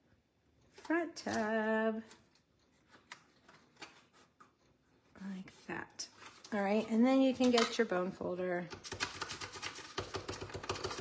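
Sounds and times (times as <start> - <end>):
bone folder scraping paper: 8.7 - 11.0.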